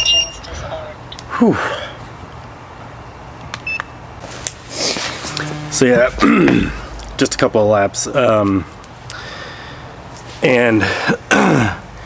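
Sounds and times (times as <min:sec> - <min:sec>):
steady low hum: 0:04.6 - 0:10.1
short electronic beep: 0:05.3 - 0:06.2.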